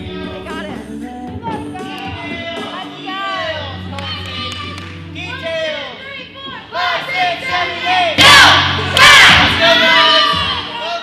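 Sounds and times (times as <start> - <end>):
girls shouting and cheering: 1.4 - 11.0.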